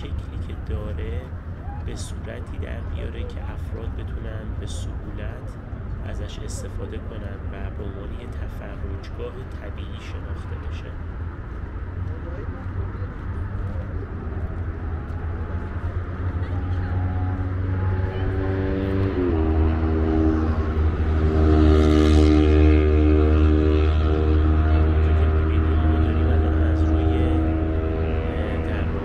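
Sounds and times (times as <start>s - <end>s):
highway traffic rumble: 0.0s - 29.0s.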